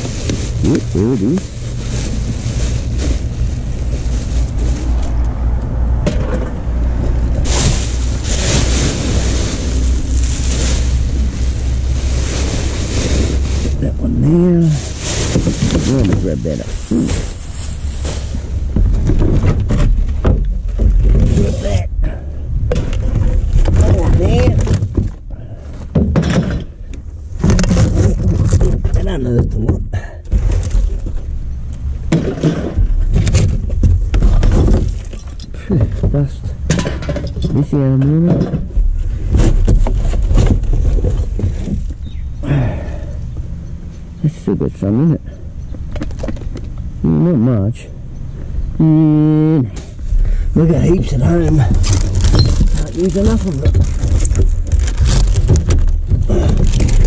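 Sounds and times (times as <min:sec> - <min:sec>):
bin bags rustling: 0:00.0 - 0:22.0, 0:22.6 - 0:42.2, 0:49.9 - 0:57.0
indistinct voices: 0:13.7 - 0:18.4, 0:48.6 - 0:54.0.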